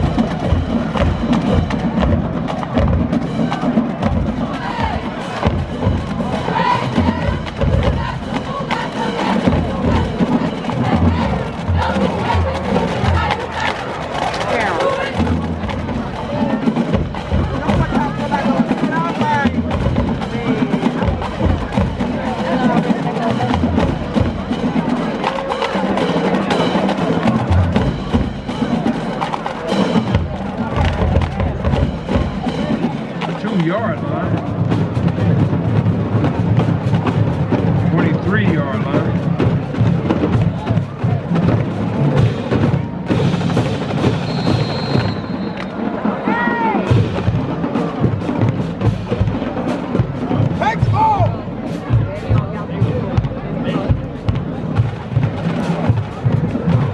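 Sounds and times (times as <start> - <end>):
bass drums: 0.0 - 45.4, 46.0 - 56.9
snare drums with rim clicks: 43.2 - 45.8.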